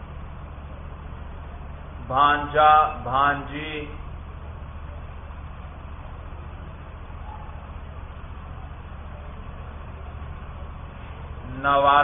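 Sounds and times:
constant hiss: 0:00.0 - 0:12.0
low hum: 0:00.0 - 0:12.0.

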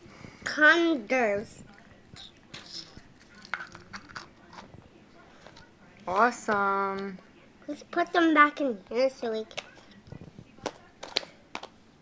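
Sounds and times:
handling noises of plastic capsule: 0:02.2 - 0:07.2, 0:09.0 - 0:11.8.

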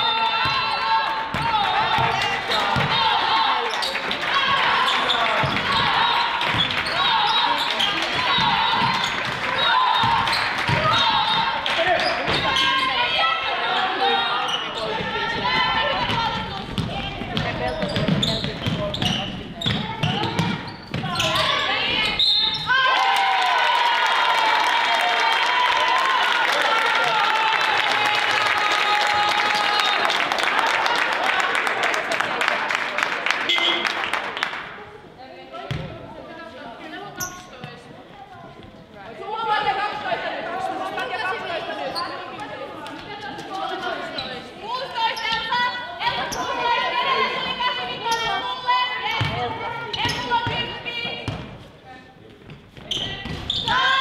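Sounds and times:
voices calling in echoing hall: 0:00.0 - 0:54.0
basketball bouncing on wooden floor: 0:16.0 - 0:21.2.

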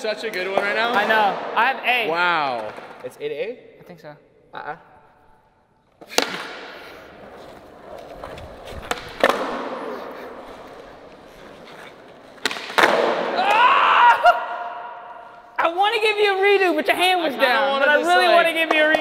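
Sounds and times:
skateboard popping and landing: 0:06.0 - 0:13.4
skateboard wheels rolling on concrete: 0:06.0 - 0:13.5.

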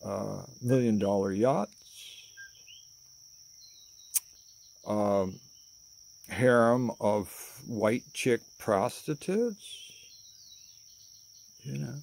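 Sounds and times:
high-pitched insect chirring: 0:00.0 - 0:12.0.

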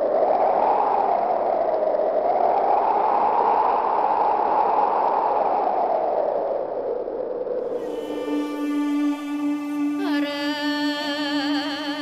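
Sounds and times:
wind blowing: 0:00.0 - 0:12.0.

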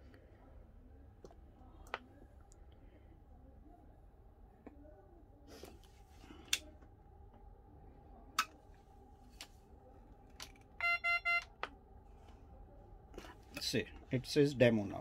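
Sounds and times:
short electronic beeps: 0:10.8 - 0:11.5.

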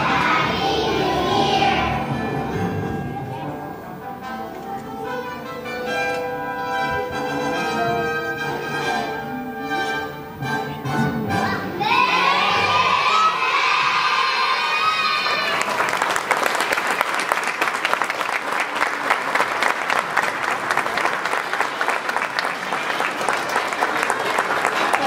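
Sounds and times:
children's voices singing together: 0:00.0 - 0:03.7, 0:11.0 - 0:15.6
audience cheering: 0:11.8 - 0:25.0
audience applause: 0:14.8 - 0:25.0.

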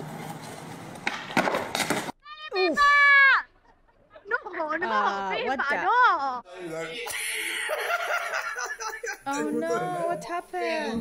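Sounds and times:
skateboard clattering and skidding: 0:00.0 - 0:02.2
skateboard wheels rolling on asphalt: 0:00.0 - 0:02.2.

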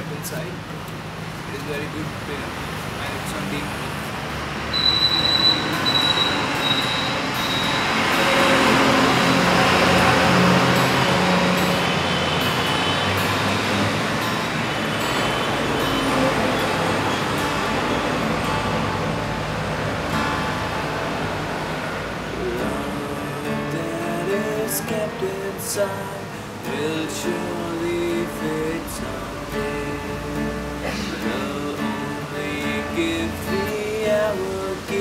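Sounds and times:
loud rushing noise: 0:02.3 - 0:34.9
acoustic guitar strumming: 0:03.6 - 0:35.0.

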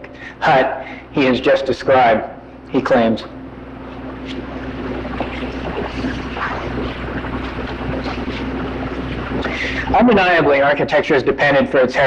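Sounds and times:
cassette hiss: 0:00.0 - 0:12.0
low electrical hum: 0:00.0 - 0:12.0.

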